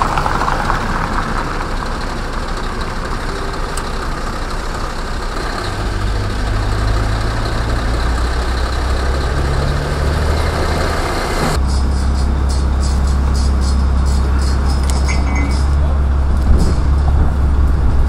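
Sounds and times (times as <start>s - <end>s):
diesel truck engine idling: 0.0s - 18.0s.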